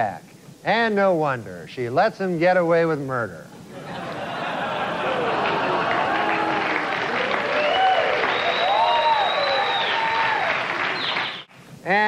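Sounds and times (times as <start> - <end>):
audience applauding: 4.3 - 11.5.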